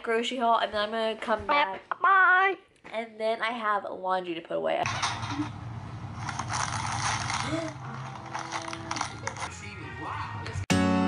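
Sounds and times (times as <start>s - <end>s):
shopping cart rattling: 6.1s - 9.5s.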